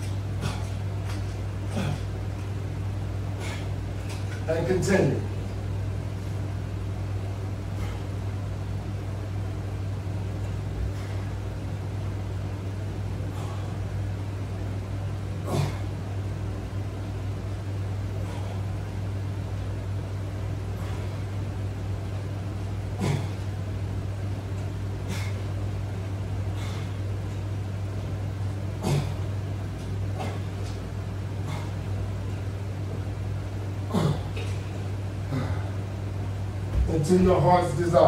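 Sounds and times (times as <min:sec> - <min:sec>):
man breathing with exertion: 0:00.0 - 0:04.3, 0:07.5 - 0:08.6, 0:10.4 - 0:16.2, 0:18.0 - 0:19.3, 0:20.4 - 0:21.6, 0:22.6 - 0:23.7, 0:24.6 - 0:32.3, 0:33.8 - 0:36.4
steady low hum: 0:00.0 - 0:38.0.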